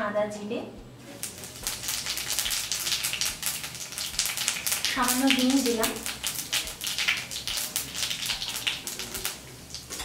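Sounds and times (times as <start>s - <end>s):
seeds sizzling in hot oil: 1.0s - 10.0s.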